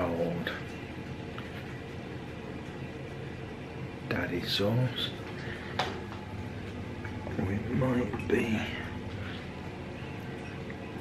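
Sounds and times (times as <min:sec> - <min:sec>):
kitchen appliances humming: 0:00.0 - 0:11.0.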